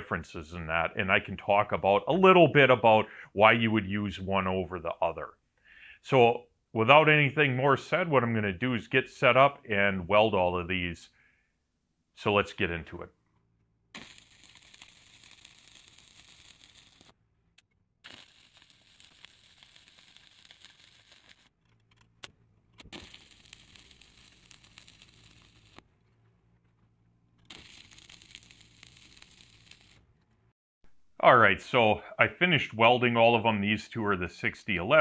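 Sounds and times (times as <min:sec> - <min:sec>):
welding arc crackling: 0:13.9 - 0:25.9, 0:27.4 - 0:30.2.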